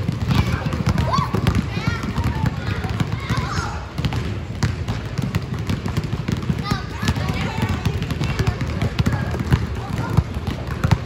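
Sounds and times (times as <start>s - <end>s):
basketballs bouncing on wooden floor: 0.0s - 11.0s.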